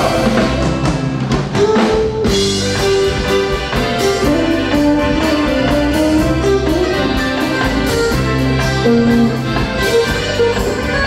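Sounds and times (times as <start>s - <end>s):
drum kit strikes: 0.0s - 11.0s
live band playing: 0.0s - 11.0s.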